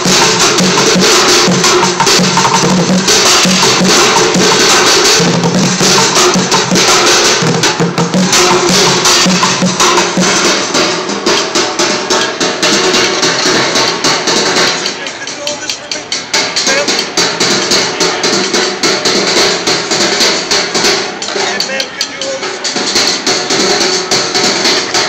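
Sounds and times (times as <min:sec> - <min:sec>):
drumsticks on buckets and pans: 0:12.1 - 0:25.0.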